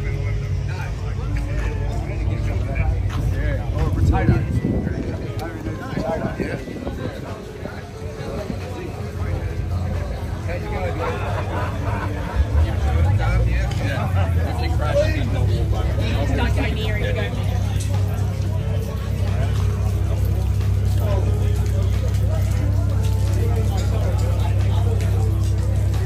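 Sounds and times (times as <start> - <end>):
music playing: 0.0 - 26.0
people chatting: 0.0 - 26.0.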